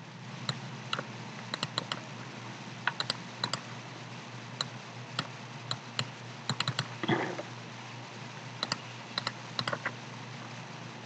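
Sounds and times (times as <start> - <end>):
low steady hum: 0.0 - 11.0
keyboard and mouse clicks: 0.4 - 2.0, 2.8 - 3.6, 4.6 - 6.9, 8.6 - 10.0.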